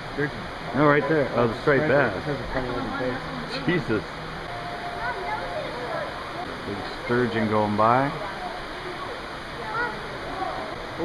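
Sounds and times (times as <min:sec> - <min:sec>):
running water rushing: 0:00.0 - 0:11.0
faint voices: 0:00.4 - 0:11.0.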